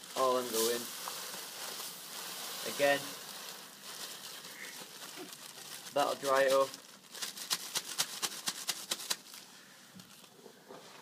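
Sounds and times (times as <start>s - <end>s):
plastic bag crinkling: 0.0s - 10.3s.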